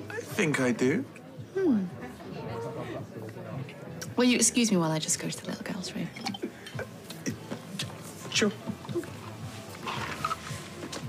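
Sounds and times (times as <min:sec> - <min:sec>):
faint murmur of voices: 0:00.0 - 0:11.0
quiet background music: 0:00.0 - 0:11.0.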